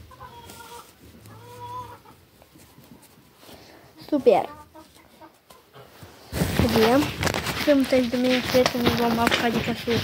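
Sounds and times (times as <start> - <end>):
chicken clucking: 0.0 - 10.0.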